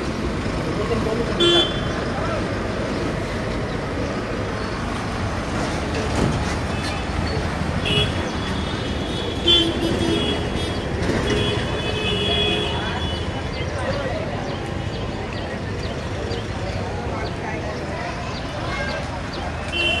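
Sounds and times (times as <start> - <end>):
rumble of engines: 0.0 - 20.0
vehicle horns honking: 1.4 - 2.0, 6.7 - 13.4, 19.7 - 20.0.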